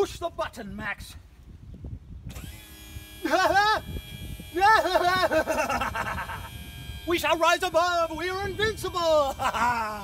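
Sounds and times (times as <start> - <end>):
hydraulic pump humming: 2.3 - 10.0.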